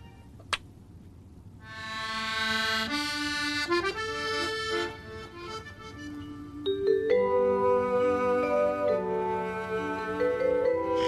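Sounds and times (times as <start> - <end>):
reedy accordion-like melody: 1.6 - 11.0.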